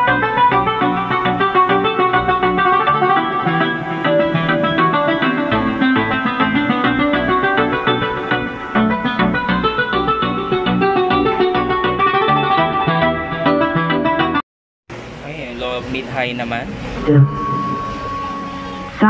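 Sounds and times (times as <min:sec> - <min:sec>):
instrumental music through speaker: 0:00.0 - 0:14.4.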